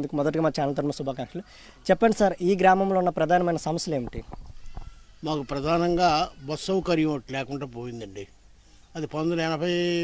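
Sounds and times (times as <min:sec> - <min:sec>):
man speaking: 0:05.2 - 0:08.4, 0:09.0 - 0:10.0.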